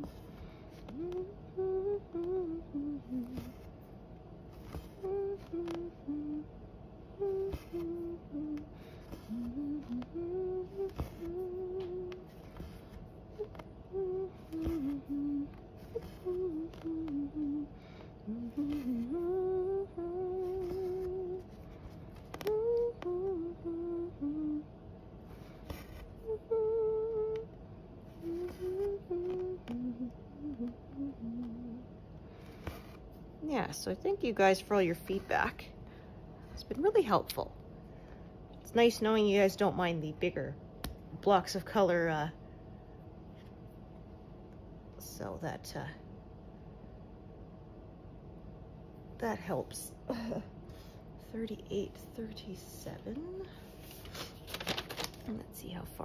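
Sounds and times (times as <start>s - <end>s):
woman humming: 0.0s - 3.7s, 4.6s - 24.8s, 25.7s - 32.0s, 51.4s - 53.9s.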